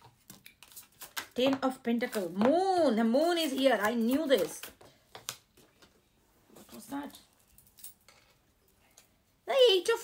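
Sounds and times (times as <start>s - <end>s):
cards being shuffled: 0.0s - 2.5s.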